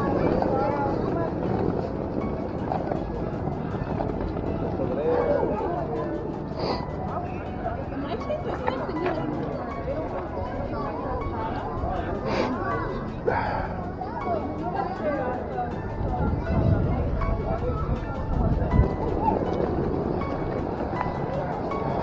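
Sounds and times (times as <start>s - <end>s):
children and adults talking: 0.0s - 22.0s
low street rumble: 0.0s - 22.0s.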